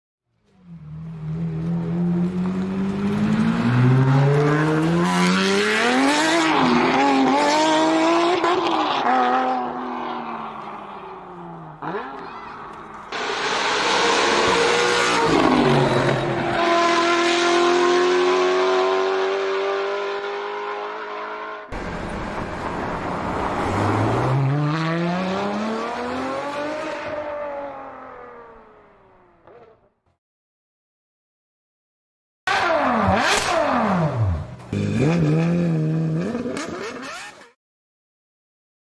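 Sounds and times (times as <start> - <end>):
car engine revving hard: 3.2 - 9.9, 13.2 - 21.7, 23.6 - 27.4, 32.5 - 37.3.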